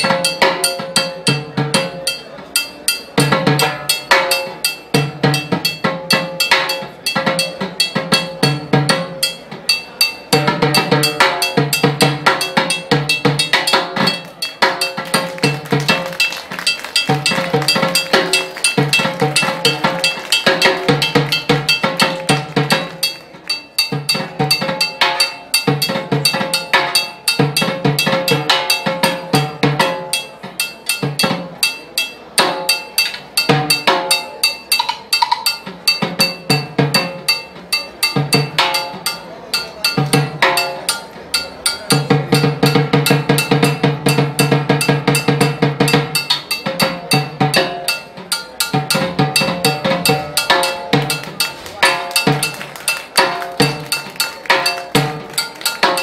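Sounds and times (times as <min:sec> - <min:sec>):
block and cowbell clicks: 0:00.0 - 0:56.0
timbales played with sticks: 0:00.0 - 0:56.0.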